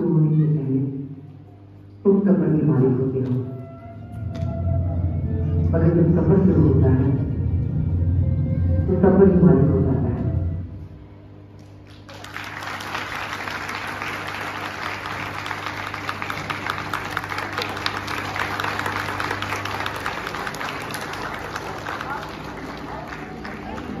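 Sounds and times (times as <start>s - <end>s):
audience applauding: 11.6s - 24.0s.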